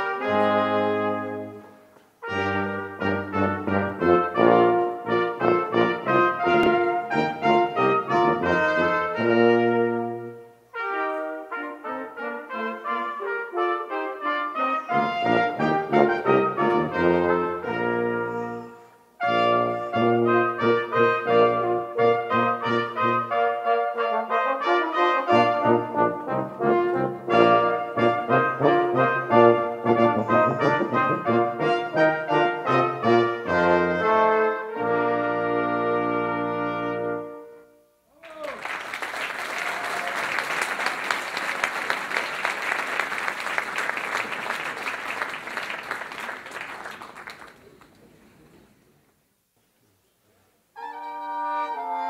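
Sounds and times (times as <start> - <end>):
brass quintet playing: 0.0 - 38.0, 50.8 - 52.0
audience applause: 38.2 - 48.5.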